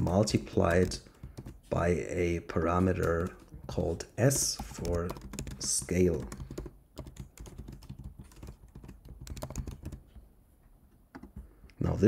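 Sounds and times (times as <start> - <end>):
computer keyboard typing: 0.0 - 10.2, 11.1 - 11.4.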